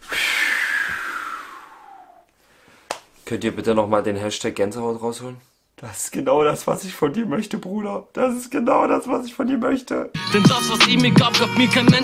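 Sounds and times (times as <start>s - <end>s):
whoosh sliding down in pitch: 0.1s - 2.2s.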